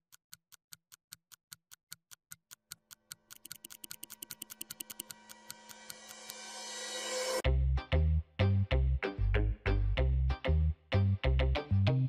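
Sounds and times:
clock-like ticking: 0.0 - 7.2.

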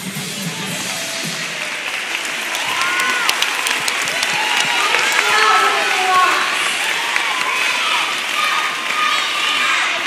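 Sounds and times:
music: 0.0 - 2.4
audience clapping: 0.9 - 10.0
shouts: 2.5 - 10.0.

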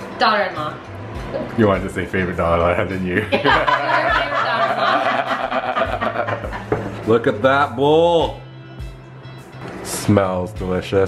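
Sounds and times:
women laughing: 3.1 - 7.0.

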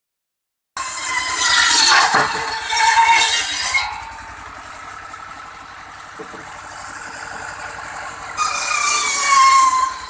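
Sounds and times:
circular saw cutting wood: 0.8 - 10.0
stationary engine pulsing: 2.6 - 10.0.

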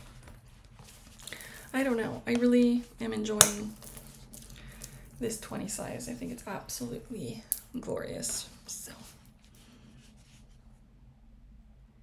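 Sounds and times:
soft scratchy leather rubs: 0.0 - 1.2, 8.5 - 10.8
low steady hum: 0.0 - 12.0.

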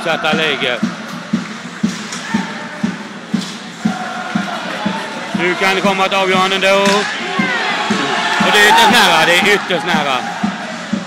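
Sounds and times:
crowd noise: 0.0 - 11.0
drum beating steady rhythm: 0.0 - 11.0.

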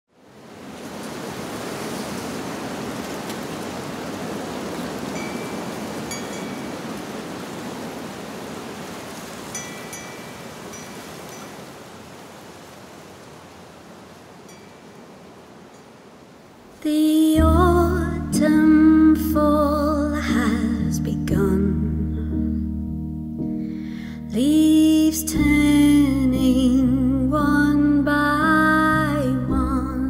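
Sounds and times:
high tinkling tones: 5.2 - 6.8, 9.5 - 11.6.

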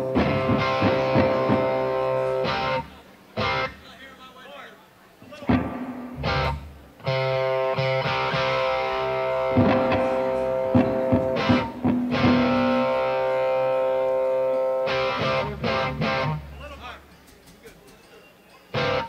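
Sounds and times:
electric guitar sustained chords: 0.0 - 3.7, 5.7 - 16.5.

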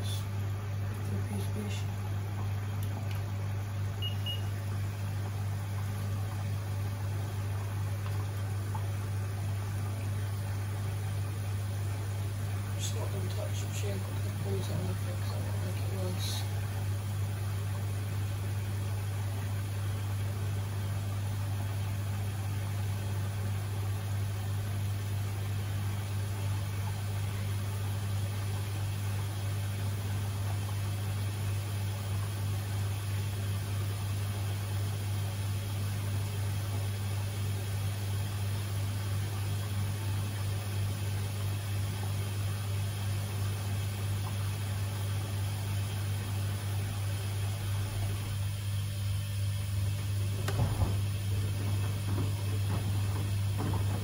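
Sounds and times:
washing machine humming: 0.0 - 54.0.

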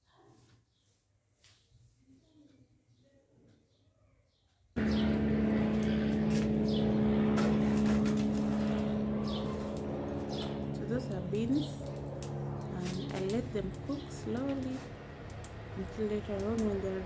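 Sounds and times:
motor drone: 4.8 - 17.0.

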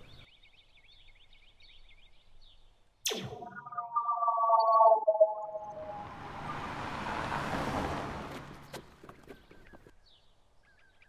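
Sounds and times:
faint bird chirps: 0.0 - 6.7
electronic hum: 3.1 - 6.7
whoosh dropping in pitch: 3.1 - 7.1.

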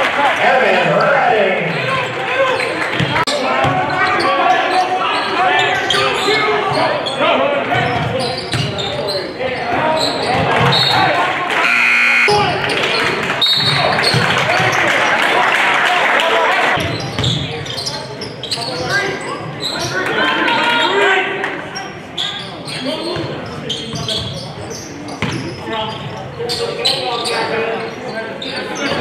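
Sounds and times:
voices echoing in gym: 0.0 - 29.0.

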